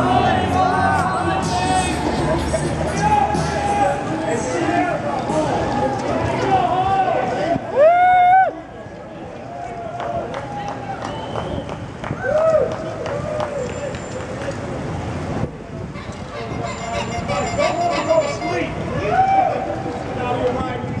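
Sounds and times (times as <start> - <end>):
cyclists whooping and shouting: 0.0 - 14.8, 15.5 - 21.0
street noise: 0.0 - 21.0.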